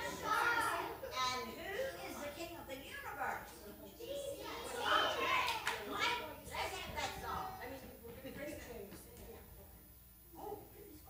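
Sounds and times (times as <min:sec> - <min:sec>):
children chattering: 0:00.0 - 0:08.8.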